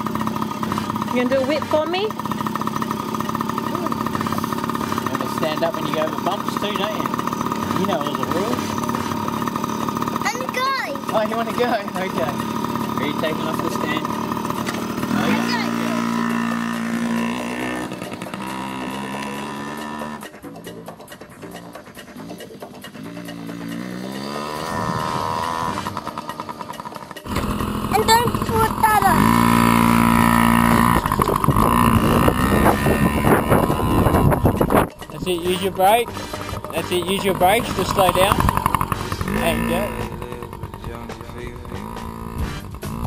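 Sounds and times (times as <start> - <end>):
dirt bike engine revving: 0.0 - 43.0.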